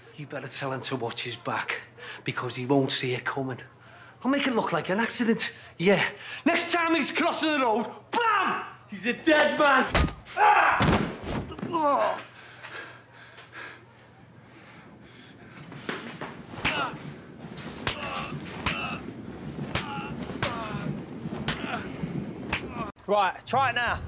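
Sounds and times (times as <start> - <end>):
people shouting: 10.4 - 10.9, 16.5 - 22.9
knocks bangs and clatters: 15.9 - 22.9.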